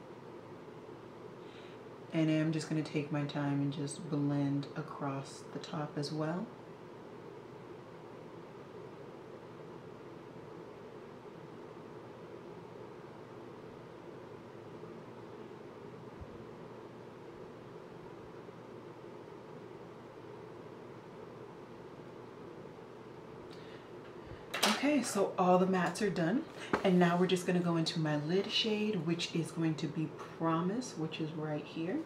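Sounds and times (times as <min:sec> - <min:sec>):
faint hum: 0:00.0 - 0:32.0.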